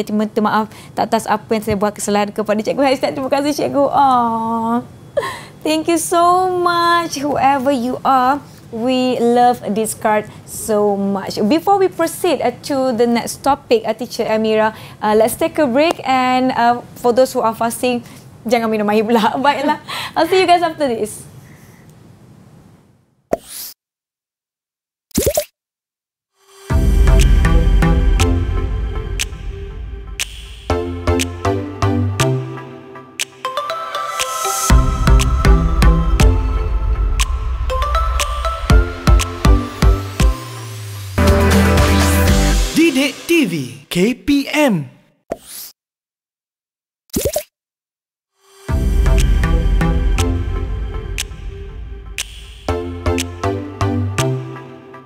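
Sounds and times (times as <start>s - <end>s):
pop with rising swish: 30.2s - 31.4s, 49.1s - 53.4s.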